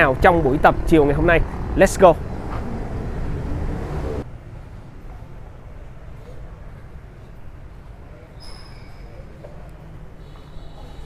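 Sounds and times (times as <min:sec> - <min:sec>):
rumble of road traffic: 0:00.0 - 0:11.0.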